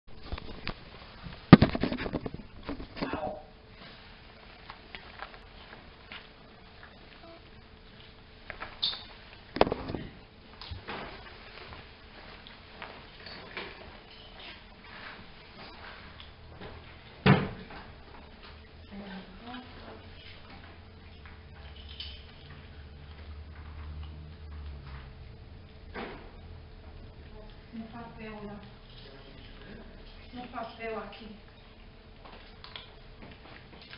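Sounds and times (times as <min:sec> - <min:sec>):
door shutting with a thud: 0:17.2 - 0:17.7.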